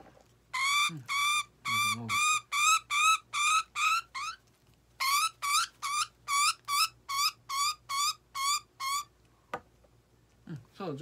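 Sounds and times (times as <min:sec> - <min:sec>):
budgerigar squawking: 0:00.6 - 0:04.4.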